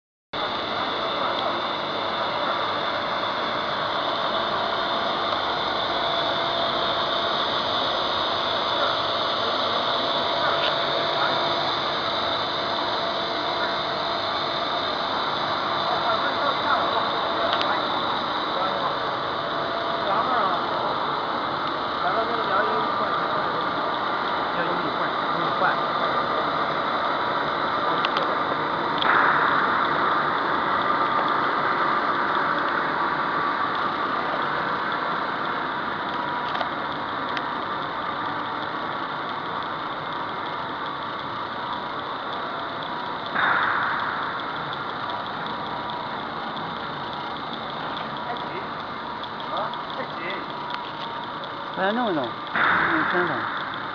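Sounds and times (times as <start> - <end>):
extrusion machinery din: 0.4 - 53.9.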